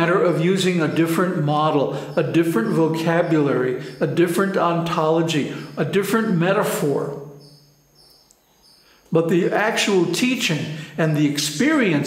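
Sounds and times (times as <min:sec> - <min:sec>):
man's voice: 0:00.0 - 0:07.3, 0:09.1 - 0:12.0
faint high-pitched chirps: 0:00.0 - 0:09.9.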